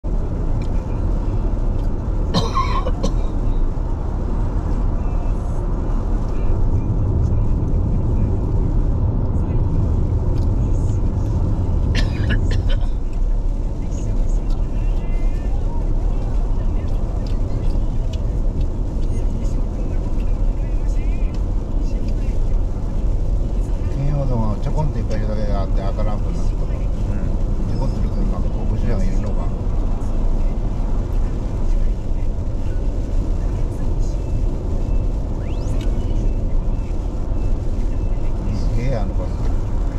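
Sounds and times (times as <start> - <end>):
car road noise on wet road: 0.0 - 39.9.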